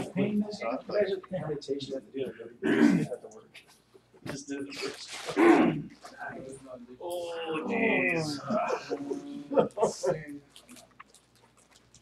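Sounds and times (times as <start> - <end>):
low talk: 0.0 - 10.5
person clearing throat: 2.6 - 3.2, 5.3 - 5.9.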